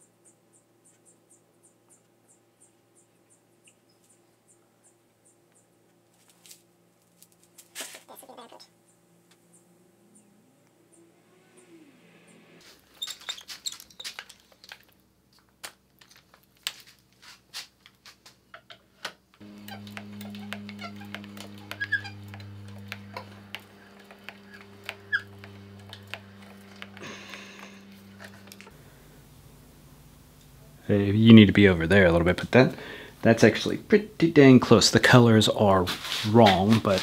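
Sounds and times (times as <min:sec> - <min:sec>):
steady low hum: 0:08.3 - 0:13.0, 0:19.4 - 0:37.0
small objects clicking and tapping: 0:13.6 - 0:17.1.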